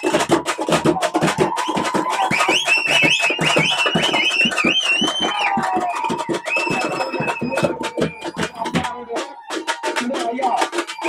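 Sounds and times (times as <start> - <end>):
frame drums beaten with sticks: 0.0 - 11.0.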